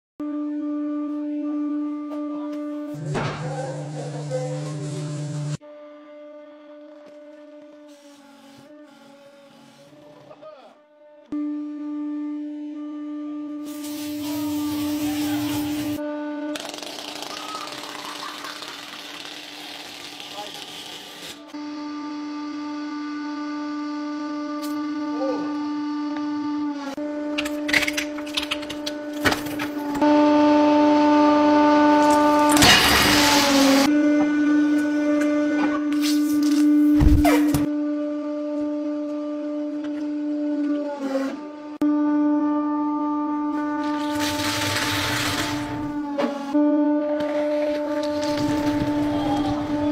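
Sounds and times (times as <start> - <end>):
hydraulic press humming: 14.3 - 37.8.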